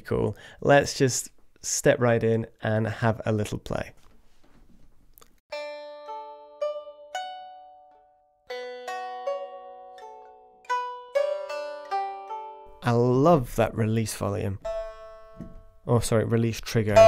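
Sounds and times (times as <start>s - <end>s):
plucked lute notes: 5.5s - 16.0s, 16.7s - 17.0s.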